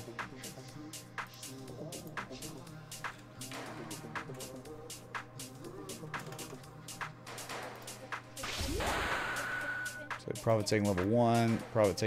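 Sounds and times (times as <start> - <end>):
electronic music: 0.0 - 12.0.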